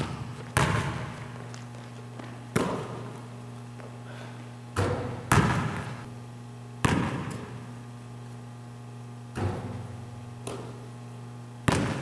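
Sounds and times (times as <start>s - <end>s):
basketball smack echoing: 0.0s - 1.2s, 2.5s - 3.1s, 4.8s - 5.9s, 6.8s - 7.6s, 9.3s - 10.8s, 11.6s - 12.0s
steady low hum: 0.0s - 12.0s.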